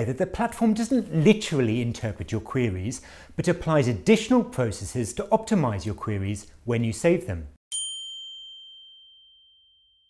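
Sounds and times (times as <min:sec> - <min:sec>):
high bell-like ding: 0:07.7 - 0:10.0.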